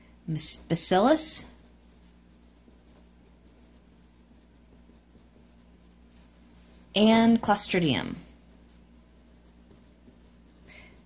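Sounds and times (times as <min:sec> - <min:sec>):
low steady hum: 0:00.0 - 0:11.0
marker writing on paper: 0:00.8 - 0:06.4, 0:08.5 - 0:11.0.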